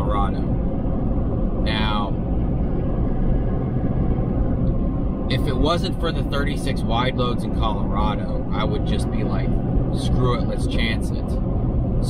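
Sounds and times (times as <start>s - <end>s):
road and engine noise in cab: 0.0s - 12.0s.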